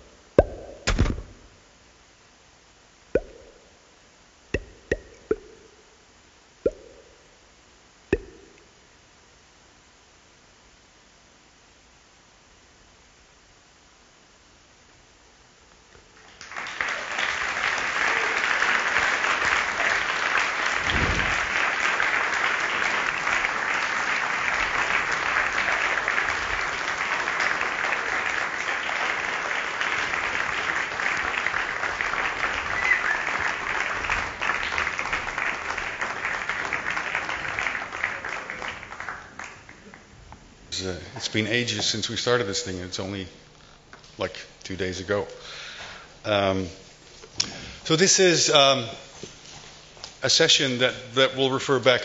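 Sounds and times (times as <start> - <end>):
sharp upward-bending electronic plops: 0.4 - 1.4, 3.2 - 3.8, 4.6 - 5.9, 6.6 - 7.3, 8.1 - 8.6
audience applauding: 16.2 - 40.1
low thump: 20.9 - 21.6.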